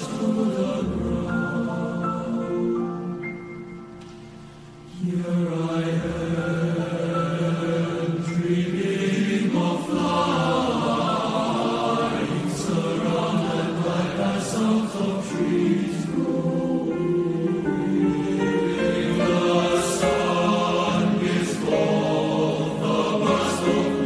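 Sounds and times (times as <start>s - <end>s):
boys' choir singing chords: 0.0s - 3.9s, 4.6s - 24.0s.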